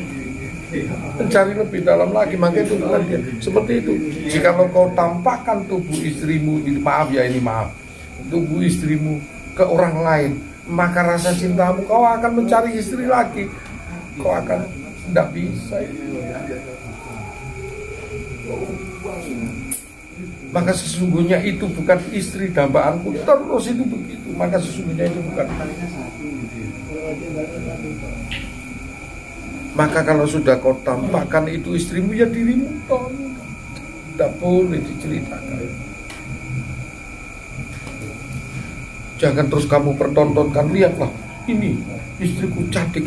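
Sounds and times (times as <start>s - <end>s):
breathy hiss: 0.0s - 43.0s
thin high whining tones: 0.0s - 43.0s.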